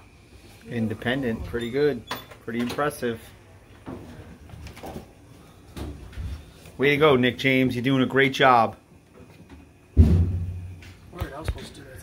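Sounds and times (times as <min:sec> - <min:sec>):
thump: 0:10.0 - 0:10.8.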